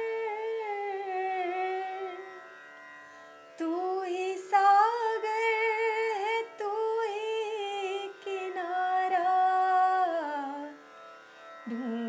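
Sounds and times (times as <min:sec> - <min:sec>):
person singing a long note: 0:11.6 - 0:12.0.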